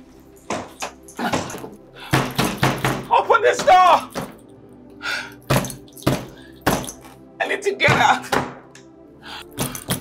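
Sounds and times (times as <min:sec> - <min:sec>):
fist banging on a door: 0:02.1 - 0:03.1.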